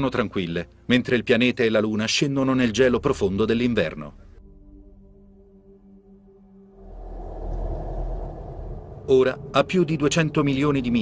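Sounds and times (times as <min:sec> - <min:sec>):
deep low rumbling whoosh: 0:06.6 - 0:11.0.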